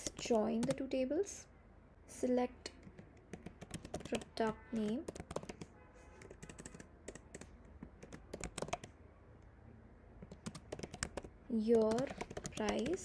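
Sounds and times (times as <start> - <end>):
computer keyboard typing: 0.0 - 0.9, 2.7 - 8.9, 10.2 - 13.0.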